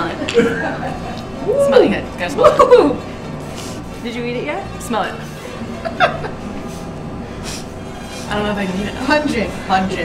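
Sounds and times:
quiet background music: 0.0 - 10.0
woman laughing: 2.4 - 3.0, 5.8 - 6.4.

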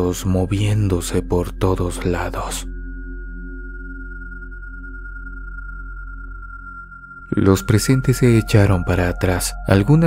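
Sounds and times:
low sustained hum: 0.0 - 10.0.

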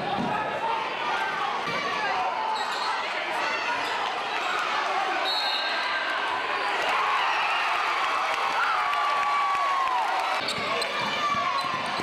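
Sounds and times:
crowd and player voices: 0.0 - 12.0.

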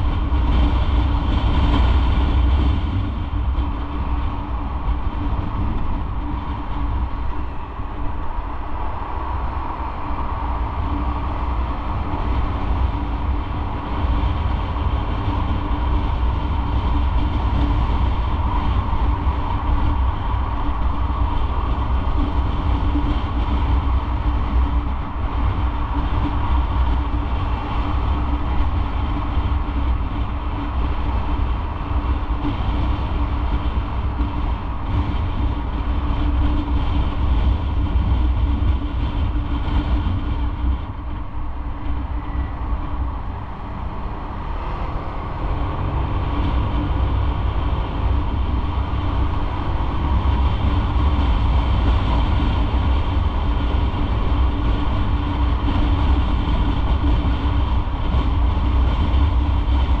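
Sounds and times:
wind rumble: 0.0 - 60.0
motorcycle engine: 38.6 - 59.5.

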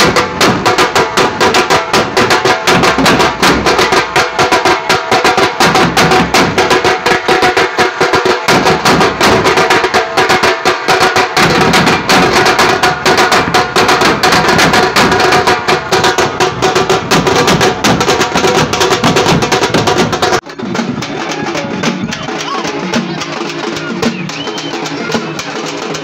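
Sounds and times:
bass drum beating: 0.0 - 10.2, 11.3 - 25.4
side drums drumming: 0.0 - 26.0.

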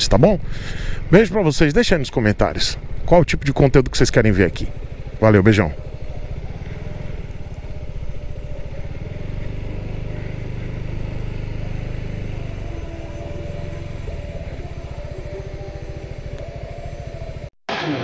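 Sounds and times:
scooter engine pulsing: 0.0 - 18.0.

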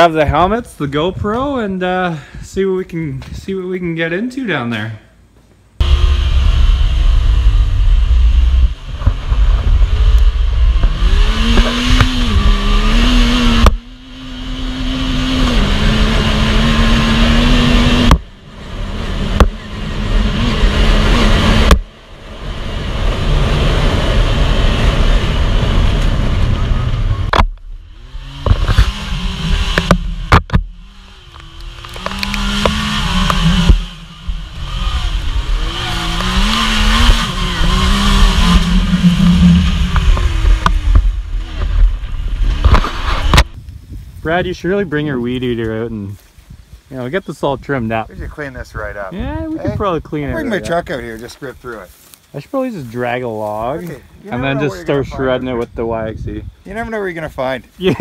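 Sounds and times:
wind noise on microphone: 0.0 - 3.6, 5.8 - 14.6, 31.5 - 51.2, 54.9 - 57.5
engine driving under throttle: 5.8 - 44.4.

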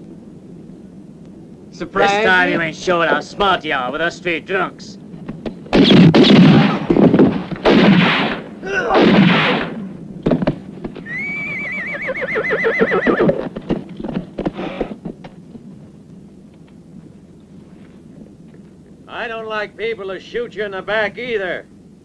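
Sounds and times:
loud bangs: 5.7 - 10.5
horse whinnying: 11.0 - 13.5, 14.5 - 15.0.

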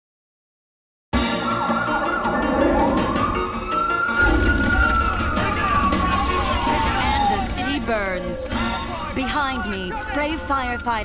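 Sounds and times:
siren wailing: 1.3 - 11.0.

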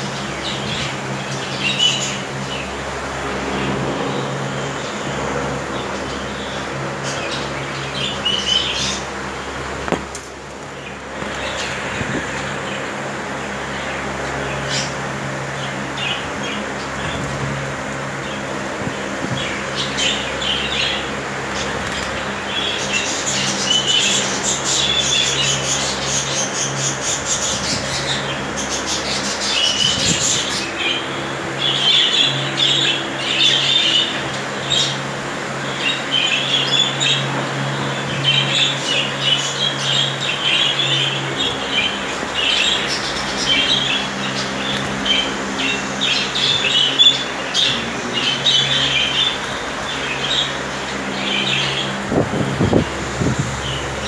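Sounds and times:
steady low hum: 0.0 - 54.0
budgerigars chattering and chirping: 0.2 - 2.6, 5.7 - 9.1, 13.6 - 15.0, 15.6 - 54.0.

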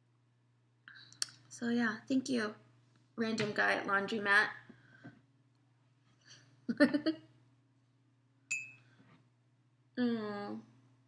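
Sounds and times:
ceramic mug clinking: 8.5 - 8.8.

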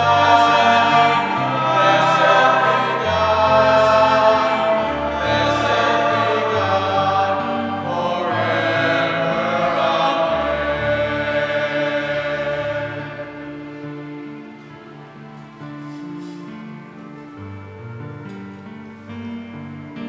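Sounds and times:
church choir singing a hymn: 0.0 - 17.4
sustained chordal accompaniment: 0.0 - 20.0.

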